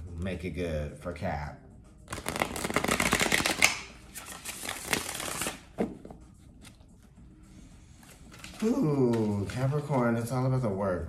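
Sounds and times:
cards shuffling: 2.1s - 6.9s, 8.0s - 10.2s.

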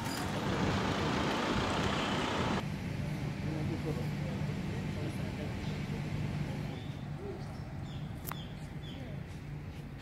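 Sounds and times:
motor vehicle and road noise: 0.0s - 10.0s.

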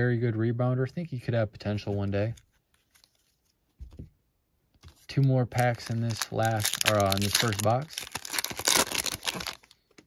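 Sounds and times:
foil wrapper tearing and crinkling: 5.6s - 9.8s.

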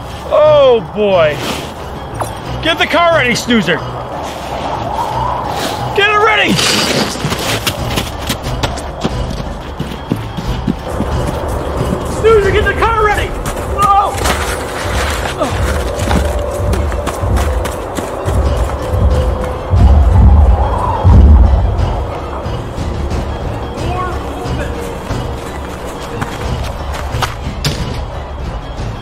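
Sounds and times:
dramatic background music: 0.0s - 29.0s
heavy booming footfalls in snow: 6.5s - 20.0s.

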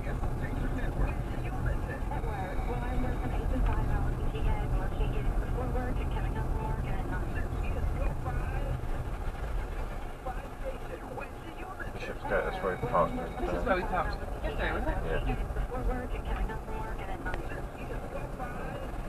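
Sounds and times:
indistinct voices: 0.0s - 8.8s, 10.2s - 19.0s
engine and tyre rumble: 0.0s - 19.0s.

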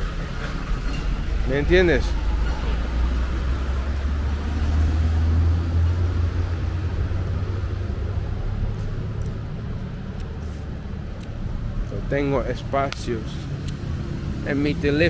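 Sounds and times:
traffic engine rumble: 0.0s - 15.0s.

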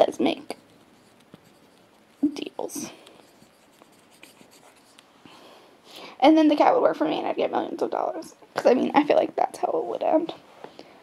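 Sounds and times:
marker scratching on paper: 0.4s - 5.1s.

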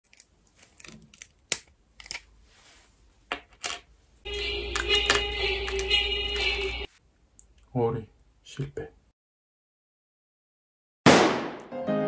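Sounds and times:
sugar candy cracking: 0.0s - 2.3s.

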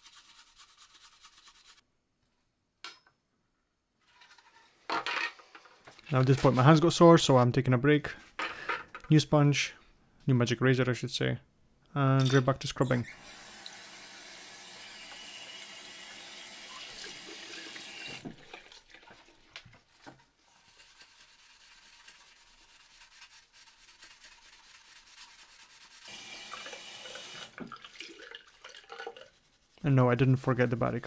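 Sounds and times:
sponge scrubbing plastic: 0.0s - 1.8s, 18.4s - 26.2s, 28.5s - 31.0s.

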